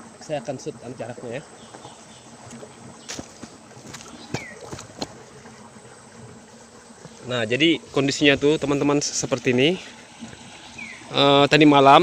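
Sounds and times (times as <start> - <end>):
faint outdoor background: 0.0 - 12.0
footsteps on dry dirt: 1.8 - 5.5.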